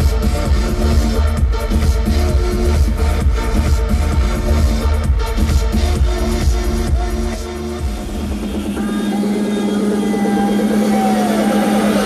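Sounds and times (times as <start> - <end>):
electronic dance music build-up: 0.0 - 12.0.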